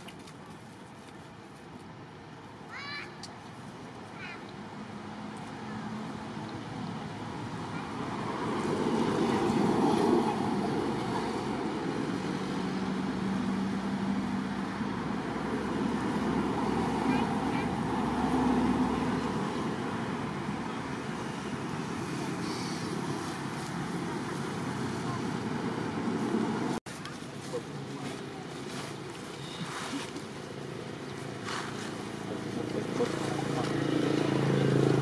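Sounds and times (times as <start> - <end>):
hum of motor traffic: 0.0 - 35.0.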